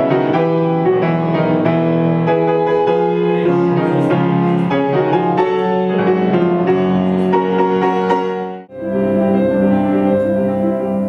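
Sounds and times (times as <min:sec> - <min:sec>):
grand piano playing: 0:00.0 - 0:11.0.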